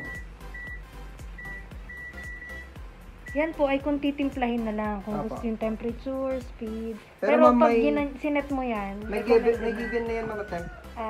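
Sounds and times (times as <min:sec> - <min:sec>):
washing machine control beeps: 0:00.0 - 0:03.6.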